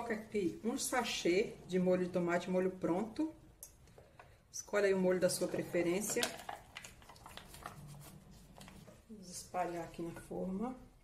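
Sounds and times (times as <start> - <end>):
plastic sachet crinkling: 6.1 - 8.9.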